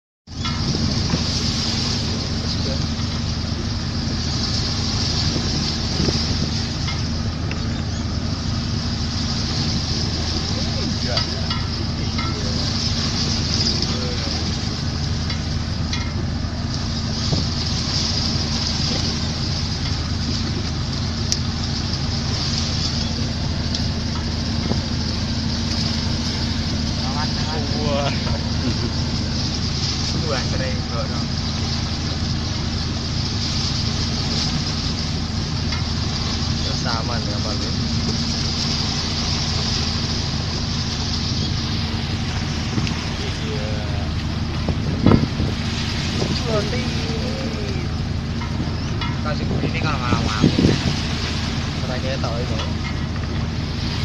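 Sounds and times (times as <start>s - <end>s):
wind: 0.2s - 54.0s
boat engine droning: 0.3s - 54.0s
waves: 0.3s - 54.0s.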